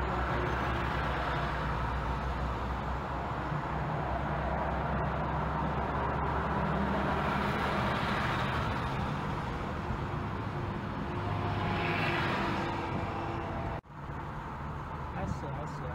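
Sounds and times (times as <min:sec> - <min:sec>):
car road and engine noise: 0:00.0 - 0:15.9.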